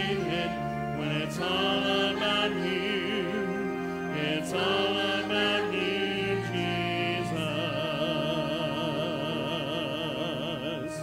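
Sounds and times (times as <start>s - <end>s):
church choir singing: 0.0s - 11.0s
man singing into a microphone: 7.2s - 11.0s.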